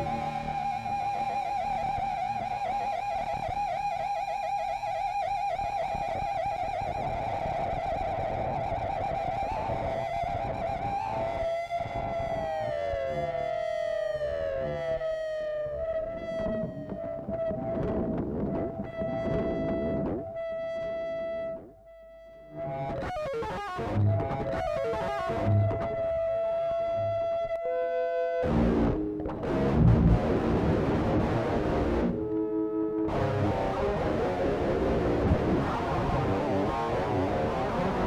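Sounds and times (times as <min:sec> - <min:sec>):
electric guitar lead note with vibrato: 0:16.1 - 0:27.8, 0:28.4 - 0:38.0.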